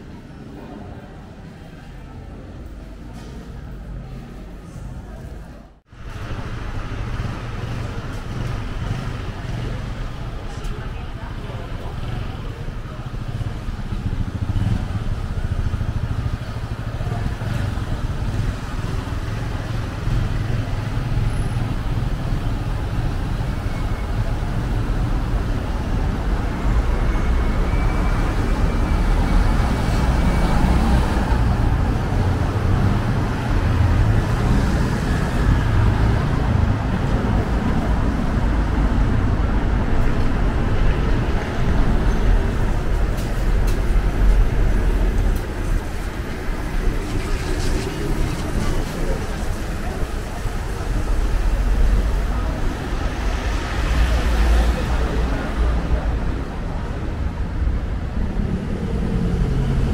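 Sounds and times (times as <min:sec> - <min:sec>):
bus passing: 0:00.0 - 0:59.9
cars passing with low rumble: 0:00.0 - 0:59.9.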